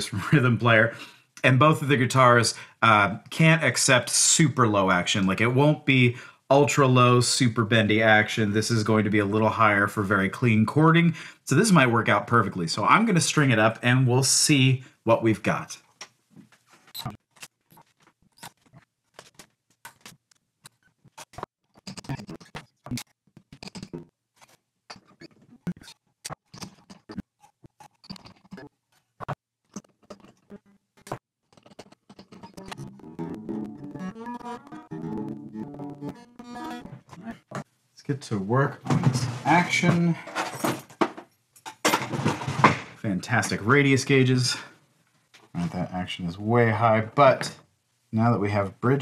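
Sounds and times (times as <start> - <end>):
guitar strings clicking and scratching: 16.9 - 37.7.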